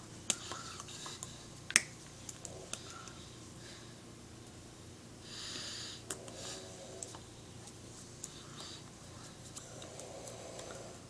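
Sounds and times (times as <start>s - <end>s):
hands clicking and slapping: 0.2s - 3.2s.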